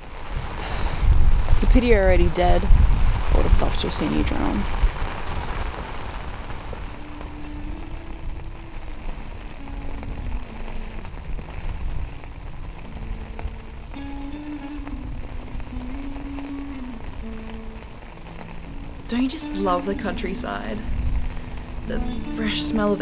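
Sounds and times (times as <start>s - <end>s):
steady rain falling: 0.0s - 23.0s
slow melody of low notes: 4.2s - 23.0s.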